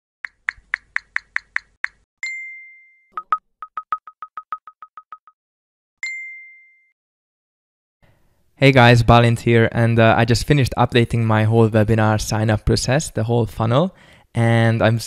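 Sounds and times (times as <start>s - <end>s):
bright ding: 2.2s - 3.4s, 6.0s - 7.0s.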